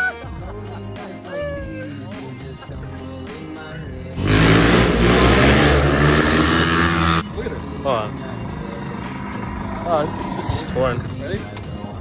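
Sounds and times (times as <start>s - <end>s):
dirt bike engine revving: 4.2s - 10.8s.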